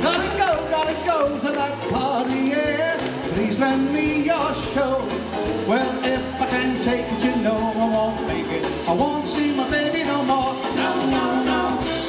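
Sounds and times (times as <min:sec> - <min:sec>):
upbeat song with singer: 0:00.0 - 0:12.0.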